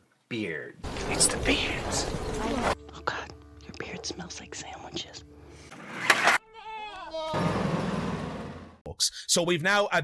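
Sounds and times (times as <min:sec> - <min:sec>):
breathy whispered speech: 0:02.9 - 0:05.3
soft whispering: 0:02.9 - 0:05.3.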